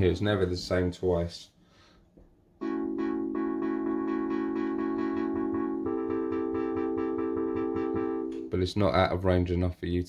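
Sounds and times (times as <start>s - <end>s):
synthesizer sustaining chords: 2.6s - 8.5s.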